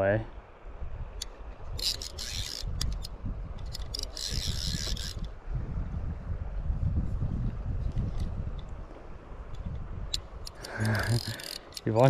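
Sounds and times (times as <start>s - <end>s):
wind rumble on microphone: 0.0s - 11.3s
fishing reel clicker buzzing: 1.2s - 5.4s, 10.1s - 12.0s.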